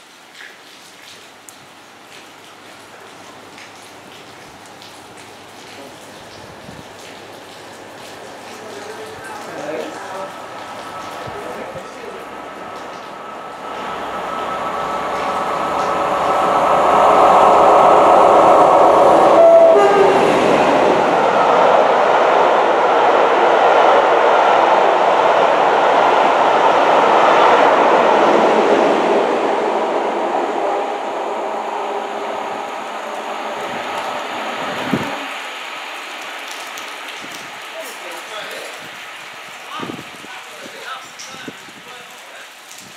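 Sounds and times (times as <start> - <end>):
diesel locomotive passing at speed: 7.8 - 37.0
coach wheels rushing on rails: 8.7 - 35.4
locomotive horn: 14.4 - 21.0.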